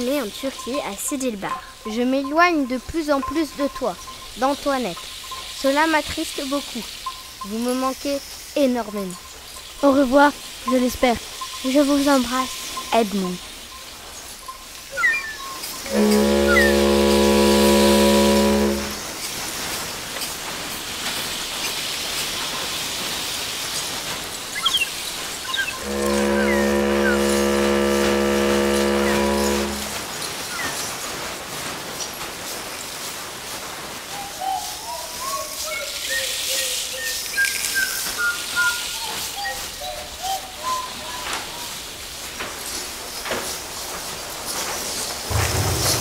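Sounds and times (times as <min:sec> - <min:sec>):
sea noise: 0:15.8 - 0:19.2, 0:25.4 - 0:30.2, 0:45.3 - 0:46.0
ship's horn blasts: 0:15.9 - 0:19.1, 0:25.8 - 0:30.2, 0:45.3 - 0:46.0.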